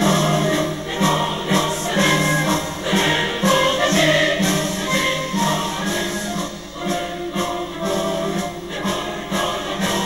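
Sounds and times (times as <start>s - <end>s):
music with choral singing: 0.0s - 10.0s.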